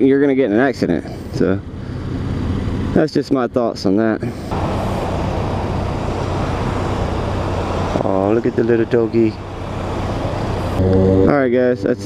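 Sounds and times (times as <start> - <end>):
road and wind noise: 0.0 - 12.0.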